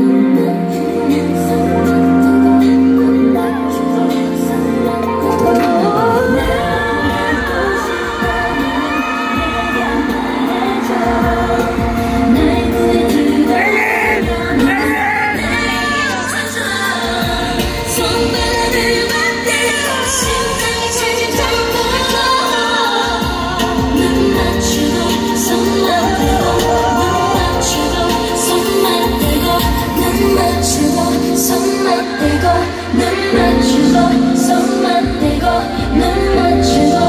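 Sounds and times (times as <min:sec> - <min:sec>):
backing music: 0:00.0 - 0:37.0
female vocals: 0:00.0 - 0:37.0
woman singing into microphone: 0:00.0 - 0:37.0.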